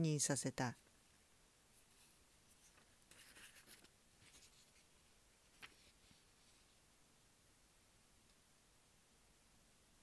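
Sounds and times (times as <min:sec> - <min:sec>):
faint scratchy sounds: 0:00.0 - 0:10.0.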